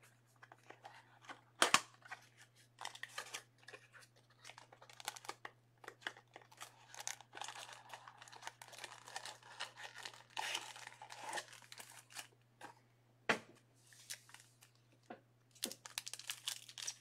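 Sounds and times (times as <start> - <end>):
plastic packaging crinkling and tearing: 2.8 - 12.4, 13.9 - 14.8, 15.5 - 17.0.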